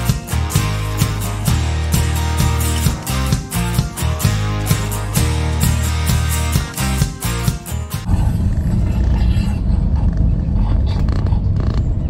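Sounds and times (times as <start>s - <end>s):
intro music with strummed chords: 0.0s - 9.4s
dense street traffic rumble: 8.0s - 12.0s
motorcycle engines: 8.1s - 12.0s.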